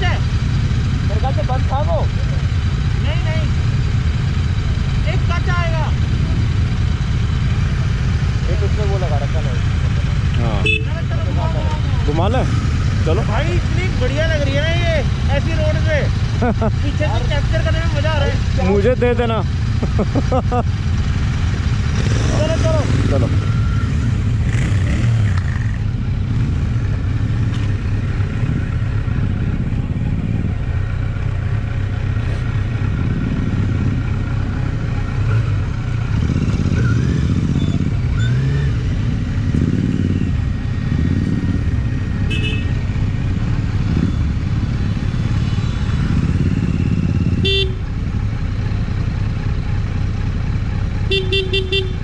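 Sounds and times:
motorcycle engine running: 0.0s - 52.0s
motorcycle horn beeping: 10.5s - 11.3s, 42.2s - 42.8s, 47.2s - 47.9s, 51.1s - 52.0s.

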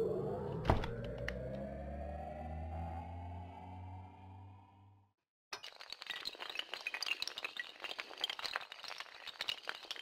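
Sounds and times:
low synthesised drone: 0.0s - 5.1s
glass shattering clatter: 5.6s - 10.0s.

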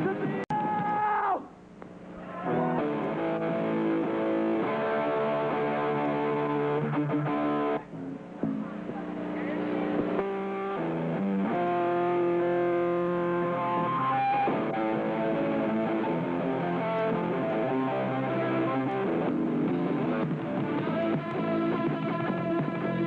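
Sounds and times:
distorted electric guitar chords: 1.8s - 23.0s
punk band playing live: 2.4s - 23.0s.

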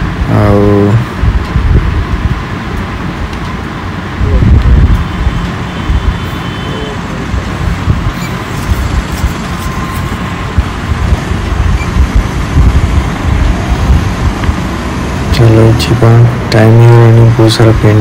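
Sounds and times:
traffic and road noise: 0.0s - 18.0s
wind buffeting microphone: 1.0s - 3.2s, 4.1s - 6.2s, 7.2s - 15.4s.

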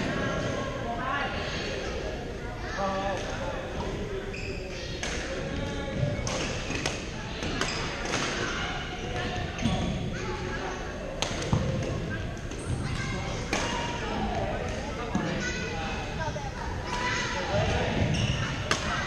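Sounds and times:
background chatter: 0.0s - 19.0s.

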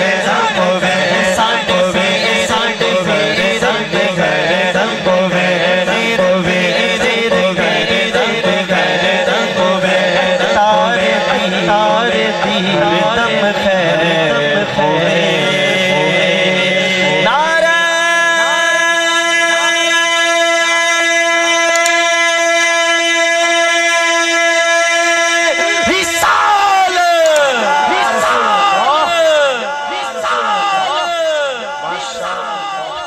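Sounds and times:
man singing into a microphone: 0.0s - 33.0s.

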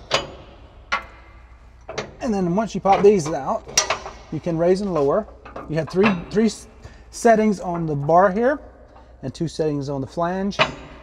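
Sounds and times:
sharp metal clicks: 0.0s - 6.8s.

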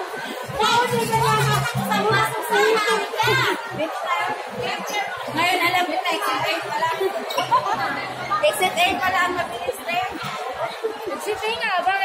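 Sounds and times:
overlapping conversational chatter: 0.0s - 12.0s.

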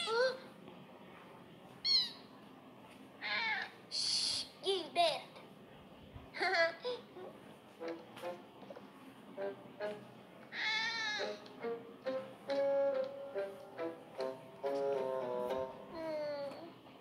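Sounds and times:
cartoon background music: 9.4s - 16.6s
falling meow-like cry: 10.5s - 11.4s
cat meowing: 10.5s - 11.5s.

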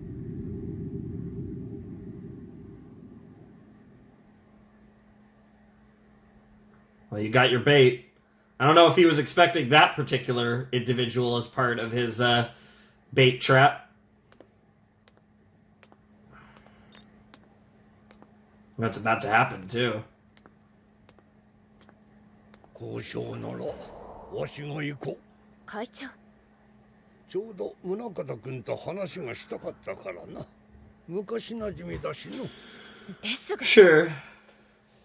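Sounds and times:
deep low rumble: 0.0s - 4.8s, 23.5s - 24.8s
low electrical hum: 0.0s - 35.0s.

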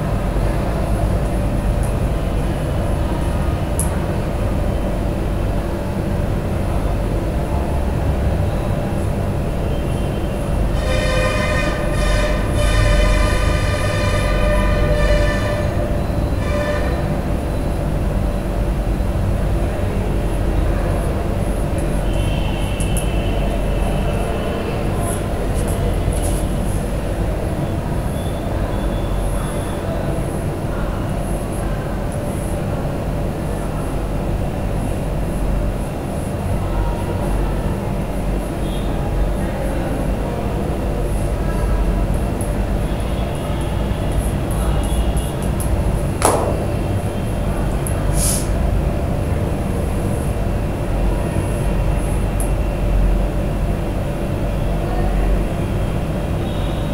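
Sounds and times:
loud horn-like tone: 9.7s - 17.4s.

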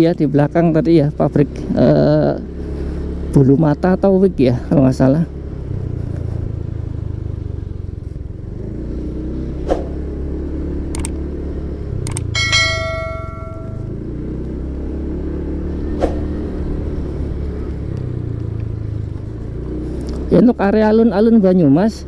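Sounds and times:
motorcycle engine running: 0.0s - 22.0s
brief ringing tone: 12.4s - 13.9s.

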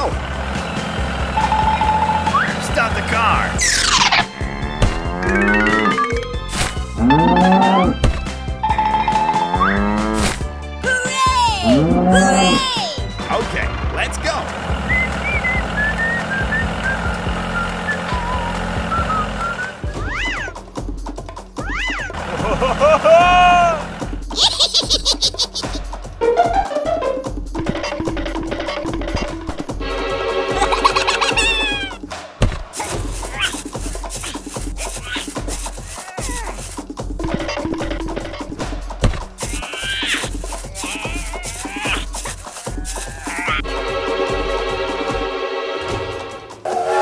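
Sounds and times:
tractor engine running: 0.0s - 10.2s, 13.0s - 20.0s, 22.1s - 24.4s, 25.2s - 46.6s
background music with simple melody: 0.0s - 41.0s, 41.8s - 47.0s
high pitched rising and falling calls: 3.6s - 4.3s.

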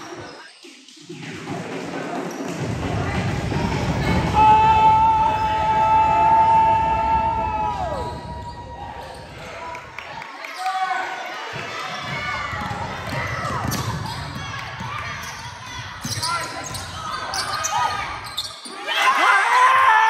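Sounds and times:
sneakers squeaking: 0.0s - 1.1s, 8.0s - 9.7s, 11.5s - 18.9s
voices echoing: 7.7s - 19.7s.

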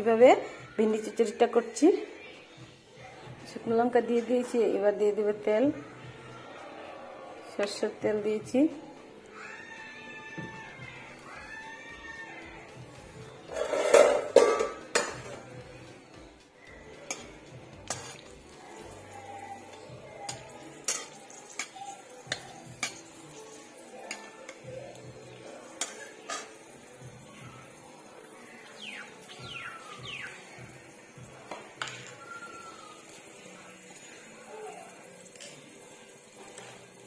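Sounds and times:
metal cookware clanking: 13.4s - 15.6s, 17.0s - 18.9s, 19.7s - 24.7s, 25.4s - 26.9s, 31.5s - 32.2s
spatula scraping in a wok: 13.5s - 15.6s, 17.0s - 27.2s
held whistled note: 32.1s - 33.2s.

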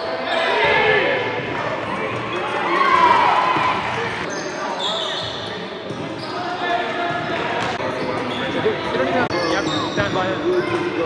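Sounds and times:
sneakers squeaking: 0.0s - 11.0s.

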